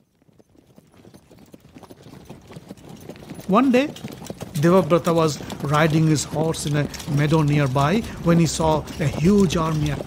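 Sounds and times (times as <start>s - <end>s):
horse hoofbeats: 0.0s - 10.0s.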